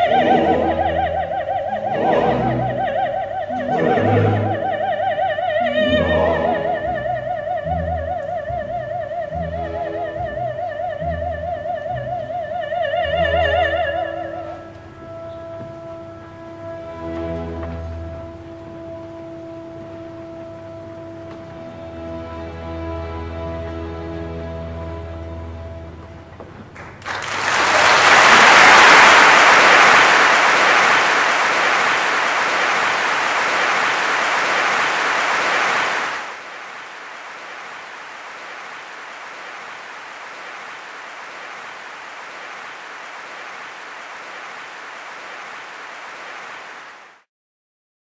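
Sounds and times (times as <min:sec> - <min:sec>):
audience applauding: 0:26.7 - 0:47.2.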